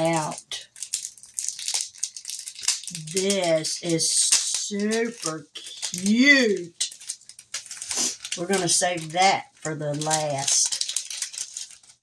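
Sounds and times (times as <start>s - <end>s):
packaging crinkling and rustling: 0.0s - 12.0s.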